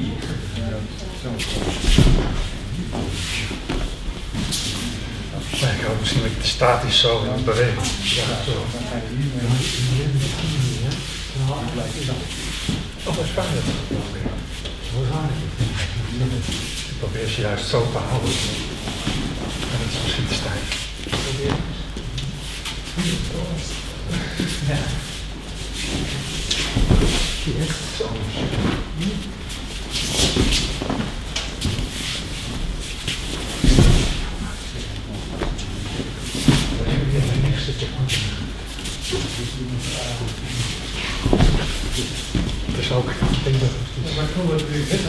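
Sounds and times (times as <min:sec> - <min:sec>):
shuffling feet: 0:01.2 - 0:06.3, 0:18.0 - 0:45.0
bodies thudding onto mats: 0:01.4 - 0:04.7, 0:26.5 - 0:27.4, 0:32.6 - 0:34.4, 0:41.1 - 0:43.4.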